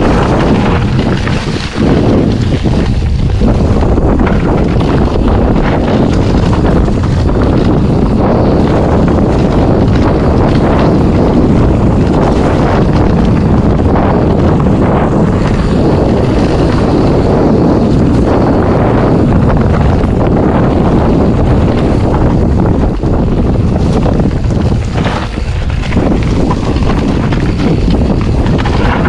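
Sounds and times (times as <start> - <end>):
bike knocking over bumps: 0.0 - 29.0
bike tyres rolling over leaves: 0.0 - 29.0
wind buffeting microphone: 0.0 - 29.0.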